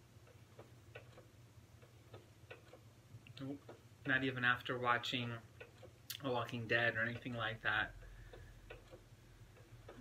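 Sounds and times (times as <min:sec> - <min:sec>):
faint regular ticking: 0:00.0 - 0:10.0
low steady hum: 0:00.0 - 0:10.0.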